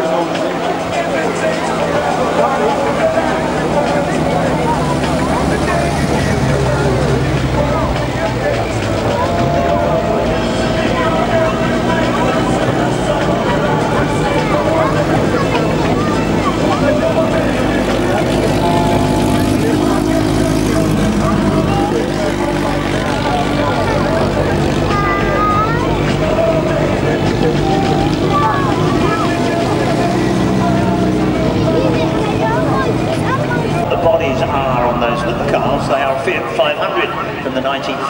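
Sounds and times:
drone of engines: 0.0s - 38.0s
stock car engines passing slowly: 0.0s - 38.0s.

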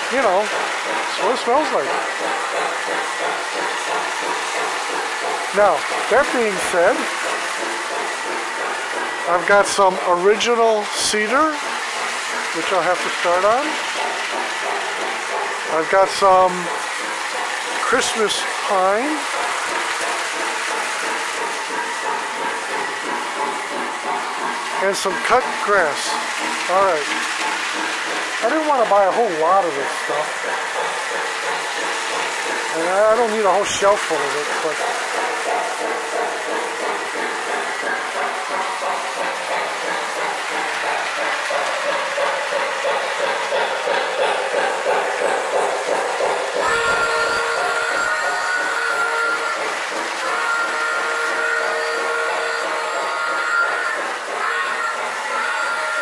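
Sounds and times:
toy train rolling on rails: 0.0s - 56.0s.

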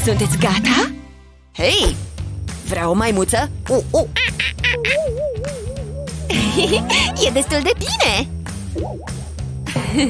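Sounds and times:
background music: 0.0s - 10.0s
man imitating monkey calls: 4.0s - 6.9s.

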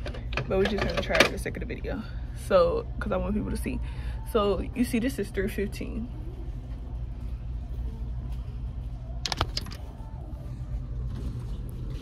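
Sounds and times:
low store background rumble: 0.0s - 12.0s.

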